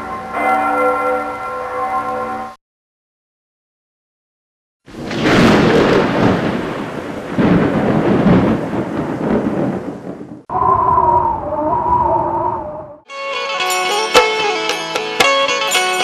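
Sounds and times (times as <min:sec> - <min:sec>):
wavering held chord: 0:00.0 - 0:02.6
thunder-like rumbling: 0:04.9 - 0:13.0.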